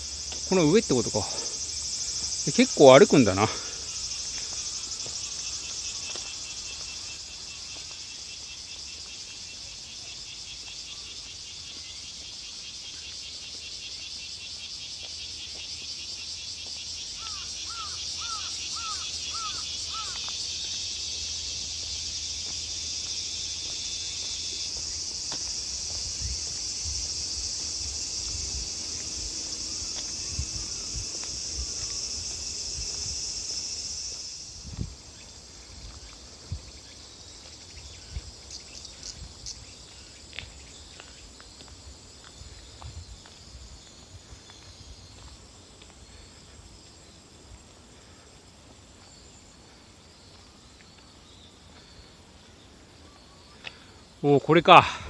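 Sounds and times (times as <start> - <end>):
footfalls on paved path: 0.0 - 54.2
insects trilling: 0.0 - 55.0.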